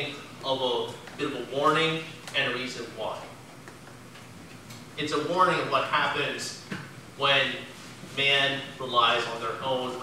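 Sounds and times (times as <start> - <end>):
man speaking: 0.0 - 3.4, 5.0 - 10.0.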